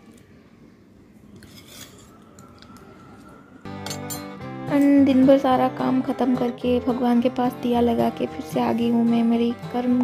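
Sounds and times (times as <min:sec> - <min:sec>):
background music: 0:02.2 - 0:10.0
spoon clinking on steel plate: 0:03.8 - 0:04.4.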